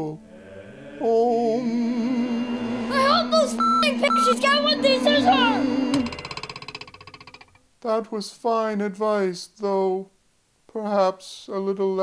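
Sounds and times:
rapidly pulsing electronic tone: 0.4s - 7.2s
person speaking: 2.7s - 5.7s.

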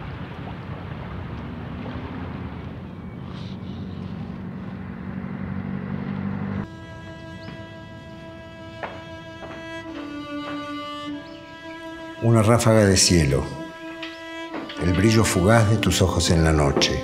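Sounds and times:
small waves washing ashore: 0.0s - 4.8s
low hum: 0.1s - 12.2s
held string notes: 5.2s - 17.0s.

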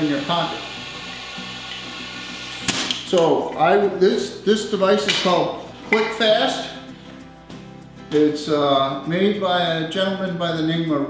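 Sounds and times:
sharp click: 2.6s - 3.3s.

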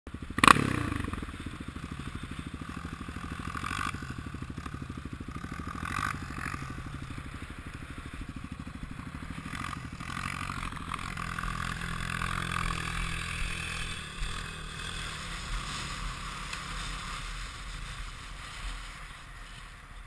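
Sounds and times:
quad bike engine idling: 0.1s - 20.0s.

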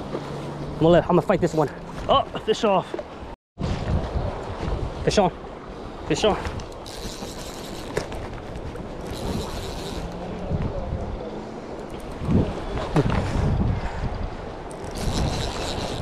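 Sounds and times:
wind buffeting microphone: 3.6s - 7.5s, 8.1s - 16.0s.

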